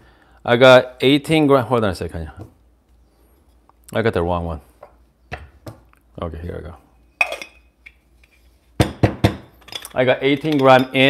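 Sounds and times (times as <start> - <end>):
metal cups clinking: 7.2 - 8.0, 9.6 - 11.0.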